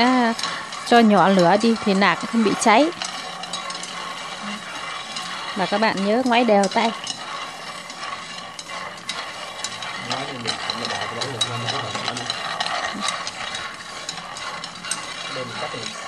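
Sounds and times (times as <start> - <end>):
chopsticks stirring nuts: 0.0 - 16.0
peanuts rattling in frying pan: 0.0 - 16.0.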